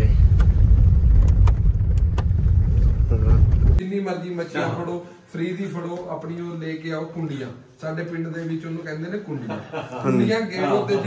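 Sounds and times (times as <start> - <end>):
car rumble inside cabin: 0.0 - 3.8.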